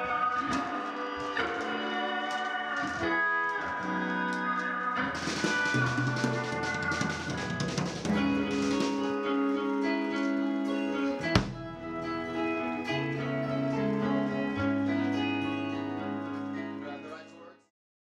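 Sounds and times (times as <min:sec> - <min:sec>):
electric guitar chords: 0:00.0 - 0:17.1
drum kit and cymbals: 0:05.0 - 0:12.0
bass notes: 0:05.0 - 0:16.8.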